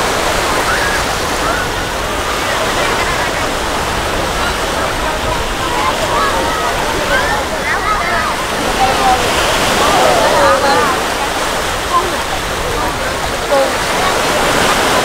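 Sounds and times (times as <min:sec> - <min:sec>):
surf breaking on a beach: 0:00.0 - 0:15.0
voices and calls of beachgoers: 0:00.0 - 0:15.0.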